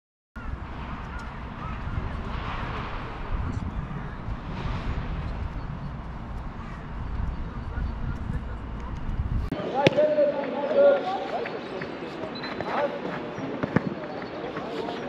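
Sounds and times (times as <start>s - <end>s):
wind on microphone: 0.4s - 9.5s
faint indistinct voices: 6.4s - 15.0s.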